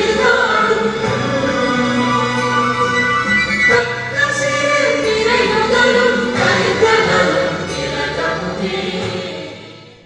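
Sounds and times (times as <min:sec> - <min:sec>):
choir singing an anthem: 0:00.0 - 0:10.0
instrumental accompaniment: 0:00.0 - 0:10.0.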